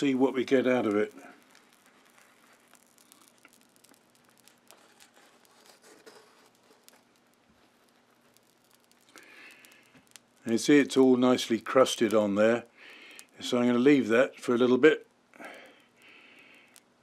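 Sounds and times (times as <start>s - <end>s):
faint crackling on hot steel: 0.0s - 17.0s.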